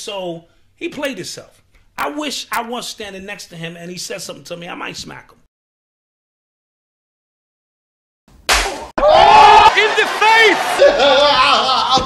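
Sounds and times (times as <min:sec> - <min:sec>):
slap to the face: 0:08.5 - 0:08.9
man shouting: 0:09.0 - 0:12.0.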